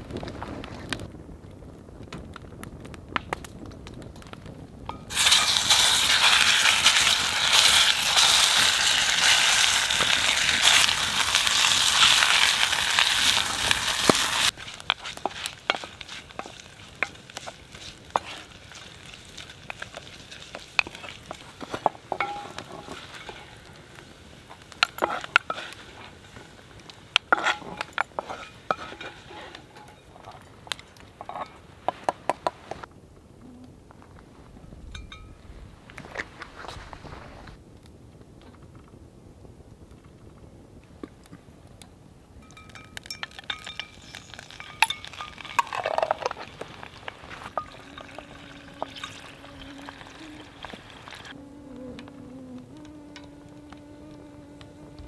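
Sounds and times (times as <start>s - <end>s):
sausage sizzling in a pot: 4.9s - 32.9s, 42.4s - 51.4s
wooden spatula scraping a pot: 5.1s - 23.8s, 24.4s - 32.9s, 43.7s - 51.4s.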